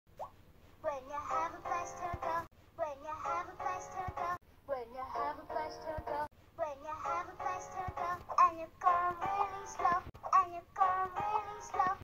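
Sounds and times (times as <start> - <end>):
backing music from tv speaker: 1.2 - 2.5, 3.2 - 4.4, 5.0 - 12.0
cartoon character singing: 6.6 - 12.0.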